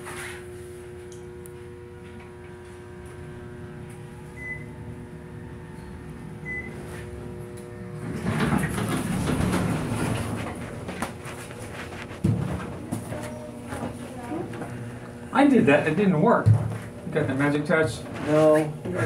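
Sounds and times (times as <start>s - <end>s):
elevator motor hum: 0.0s - 19.0s
elevator stopping rumble and rattle: 2.0s - 11.0s
sliding doors opening: 7.8s - 10.8s.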